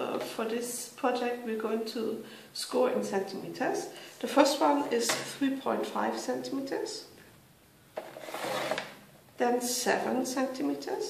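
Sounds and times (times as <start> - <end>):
paper trimmer blade scraping: 8.1 - 8.9.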